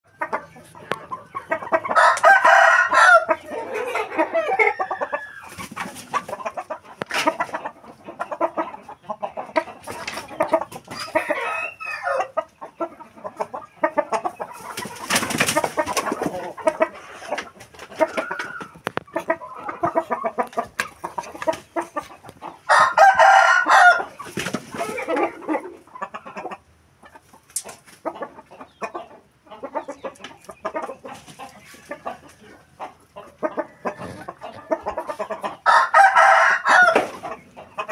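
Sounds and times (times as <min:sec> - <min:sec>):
hens clucking: 0:00.1 - 0:37.9
loud drawn-out chicken calls: 0:00.1 - 0:37.9.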